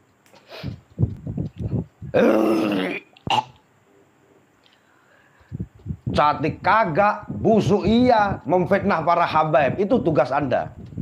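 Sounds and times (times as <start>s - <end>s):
man retching and gagging: 2.1s - 3.6s.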